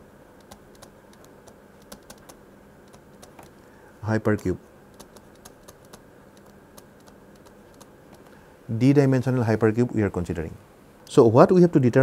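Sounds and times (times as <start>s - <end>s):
faint steady hiss: 0.0s - 12.0s
man speaking: 4.0s - 4.6s, 8.7s - 12.0s.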